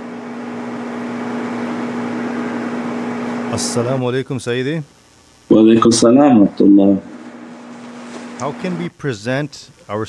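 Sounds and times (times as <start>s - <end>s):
steady hum: 0.0s - 10.0s
constant hiss: 2.8s - 10.0s.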